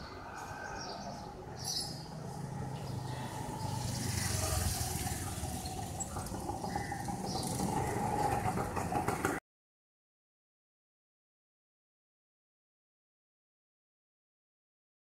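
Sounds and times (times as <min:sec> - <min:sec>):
street noise: 0:00.0 - 0:09.4
motor scooter engine: 0:01.9 - 0:09.4.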